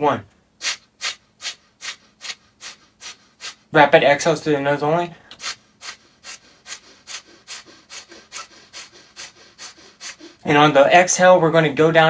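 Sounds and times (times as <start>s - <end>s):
rapid forceful nose exhales: 0.6s - 3.7s, 5.3s - 10.5s.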